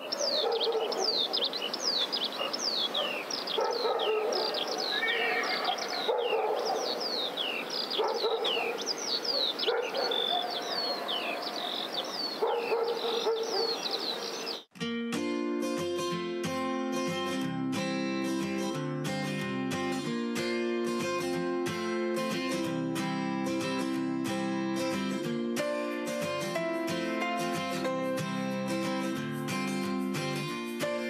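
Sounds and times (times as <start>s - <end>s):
dog barking: 0.0s - 1.6s, 2.4s - 4.9s, 5.6s - 7.0s, 8.0s - 14.1s
birds chirping: 0.0s - 14.7s
strummed acoustic guitar music: 14.7s - 31.0s.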